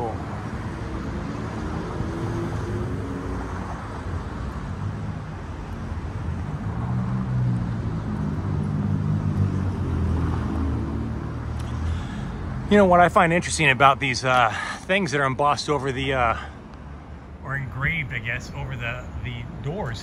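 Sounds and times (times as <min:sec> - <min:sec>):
vehicle engine hum: 0:00.0 - 0:20.0.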